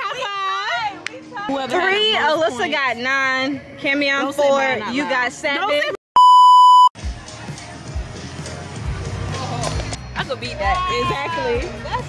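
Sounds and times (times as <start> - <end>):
outdoor background music: 0.0 - 6.0, 7.0 - 12.0
test tone beep: 6.2 - 6.9.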